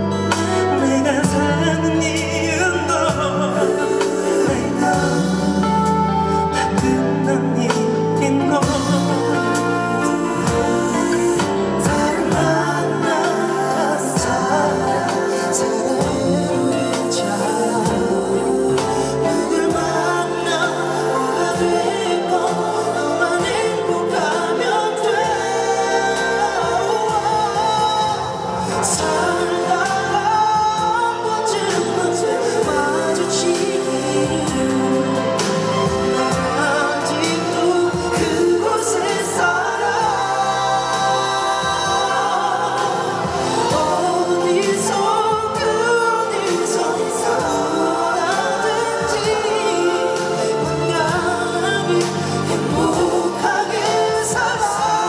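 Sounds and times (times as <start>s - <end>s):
live band accompaniment: 0.0s - 55.0s
man singing pop ballad: 0.0s - 55.0s.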